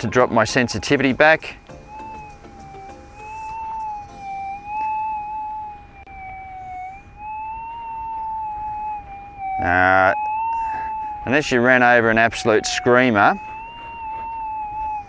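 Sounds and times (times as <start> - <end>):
metal detector threshold tone: 0.0 - 8.8.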